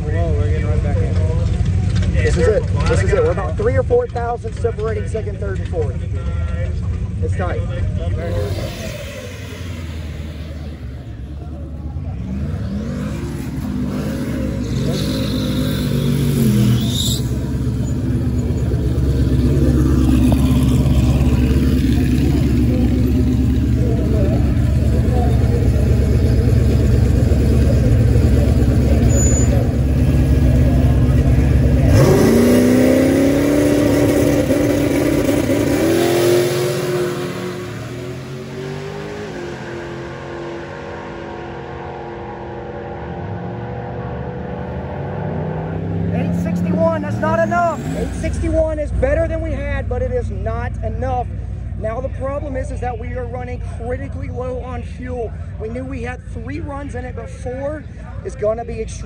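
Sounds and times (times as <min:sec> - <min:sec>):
drag car engine rumbling and revving: 0:00.0 - 0:59.0.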